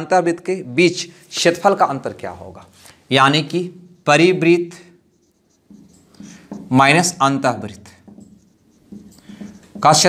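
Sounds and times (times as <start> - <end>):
marker pen on whiteboard: 0.0 - 10.0.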